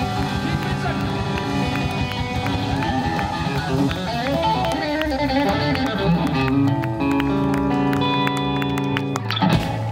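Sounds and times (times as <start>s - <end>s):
electric guitar and upright bass chord: 0.0s - 9.9s.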